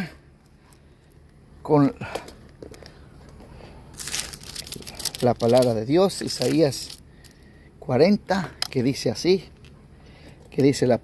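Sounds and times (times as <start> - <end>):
low background hum: 0.0 - 11.0
paper pages rustling: 2.8 - 7.0.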